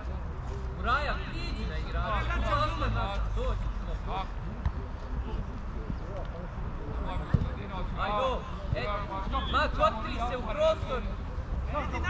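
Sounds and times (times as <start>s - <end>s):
ball kicked thud: 7.3s - 7.5s.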